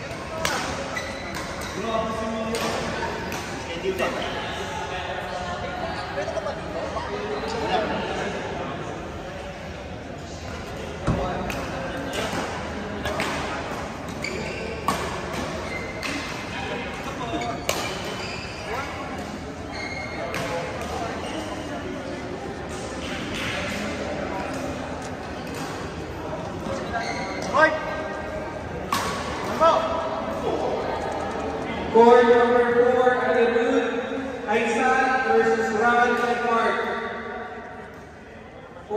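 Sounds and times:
rackets hitting shuttlecock: 0:00.1 - 0:01.8, 0:02.5 - 0:04.2, 0:11.0 - 0:18.2, 0:20.2 - 0:21.2, 0:28.8 - 0:29.6.

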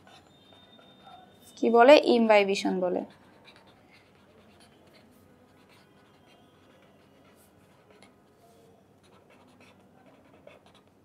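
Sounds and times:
marker pen scratching on paper: 0:00.0 - 0:01.6, 0:02.8 - 0:11.0.

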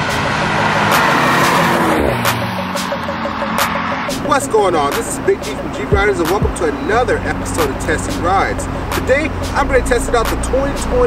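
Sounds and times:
music with a beat: 0:00.0 - 0:11.0.

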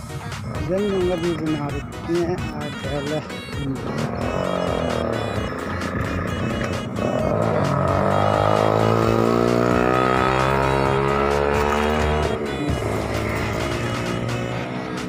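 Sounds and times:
background music with beat: 0:00.0 - 0:15.0
vehicle engine accelerating: 0:03.8 - 0:15.0.

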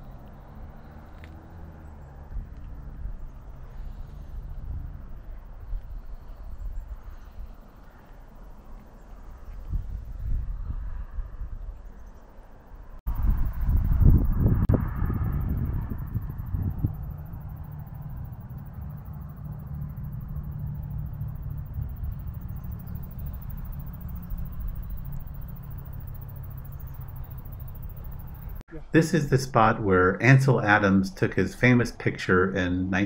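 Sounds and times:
low outdoor rumble: 0:00.0 - 0:33.0.

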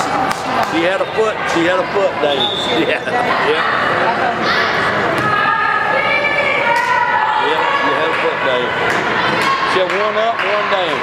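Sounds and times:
people shouting: 0:01.3 - 0:11.0.

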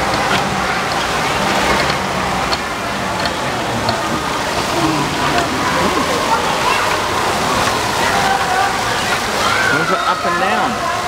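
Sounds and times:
background chatter: 0:00.0 - 0:11.0
water spraying and splashing: 0:00.0 - 0:11.0.

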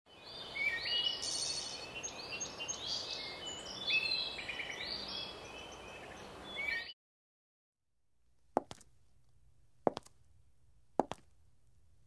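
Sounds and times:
faint outdoor background: 0:00.1 - 0:07.0, 0:08.0 - 0:12.0
birds chirping and whistling: 0:00.2 - 0:07.0.

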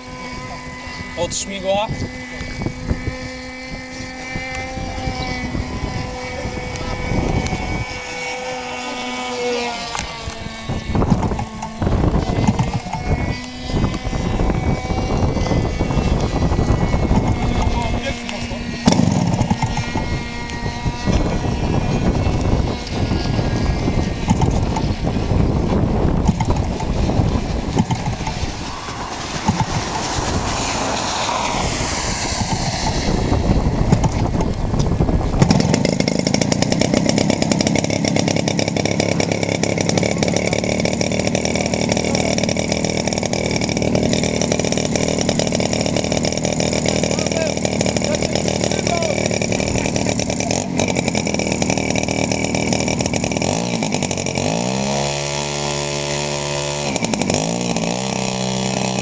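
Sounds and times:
model aircraft engine running: 0:00.0 - 0:59.0
wind buffeting microphone: 0:00.0 - 0:59.0.

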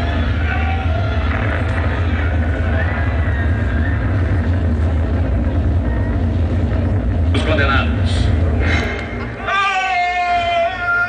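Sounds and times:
loud deep rumble: 0:00.0 - 0:09.5.

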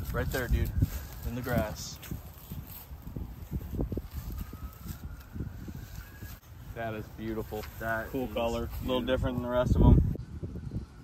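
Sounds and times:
scuffling and rustling in grass: 0:00.0 - 0:09.6.

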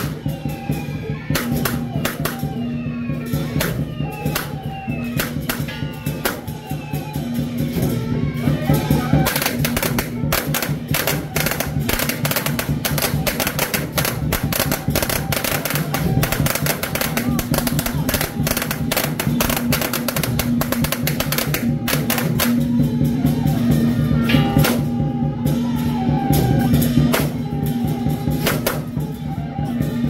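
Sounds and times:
firecrackers popping: 0:01.3 - 0:02.6, 0:03.6 - 0:06.9, 0:09.2 - 0:22.8, 0:28.4 - 0:29.0
procession music: 0:08.8 - 0:30.0.

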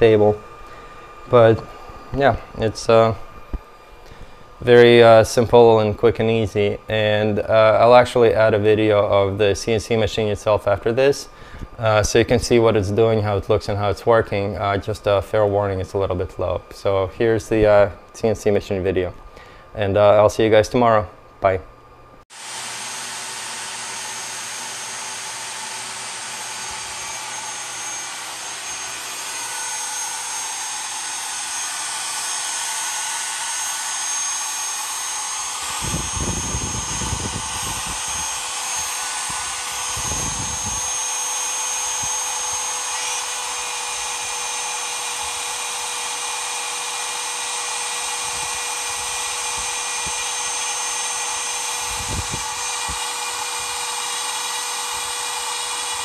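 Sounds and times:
router spinning with high whine: 0:00.0 - 0:19.0, 0:22.3 - 0:56.0.

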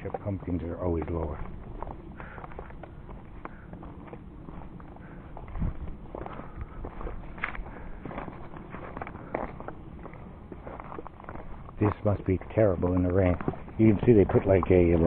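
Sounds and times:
footsteps on gravel: 0:00.0 - 0:15.0.

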